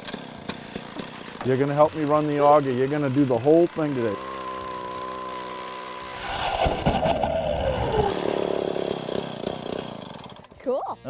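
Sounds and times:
ice auger engine drilling: 0.0 - 10.6.

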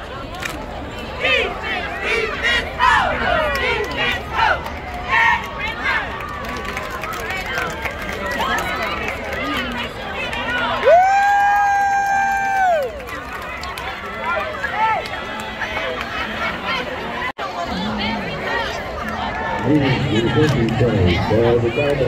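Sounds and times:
spectators talking and cheering: 0.0 - 22.0.

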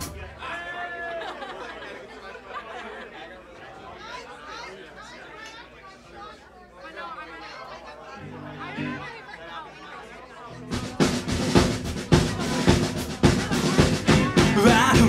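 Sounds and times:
many voices talking: 0.0 - 15.0.

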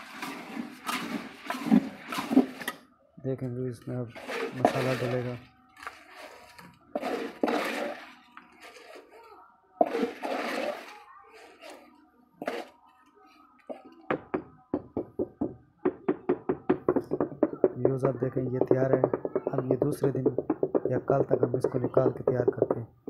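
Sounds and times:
trowel scraping gritty cement: 0.0 - 2.8, 4.0 - 12.8
knocks on plastic mould: 14.1 - 22.9.

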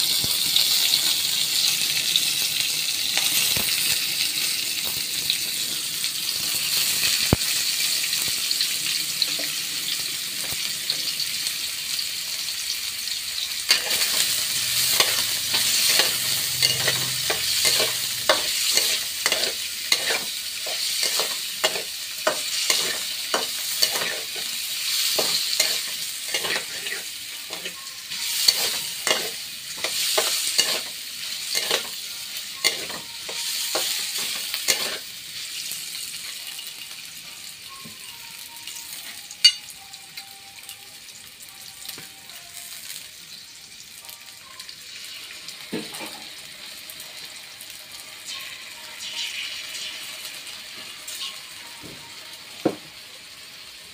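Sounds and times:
oil sizzling in a wok: 0.0 - 53.9
metal spatula scraping a wok: 13.7 - 27.8, 28.4 - 32.0, 32.6 - 35.1.

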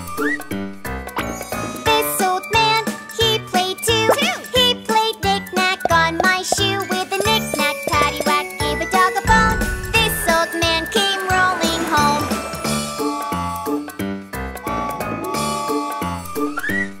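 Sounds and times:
bouncy instrumental backing: 3.6 - 12.6
person singing: 5.7 - 12.3.

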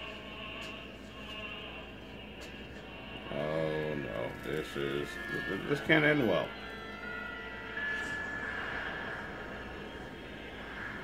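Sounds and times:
faint sustained high tones: 3.3 - 11.0.

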